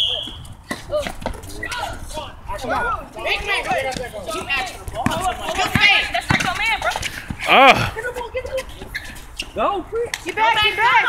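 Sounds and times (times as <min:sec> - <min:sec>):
basketball dribbling thuds: 0:00.2 - 0:02.1, 0:03.4 - 0:09.2
people shouting: 0:01.6 - 0:08.0, 0:10.4 - 0:11.0.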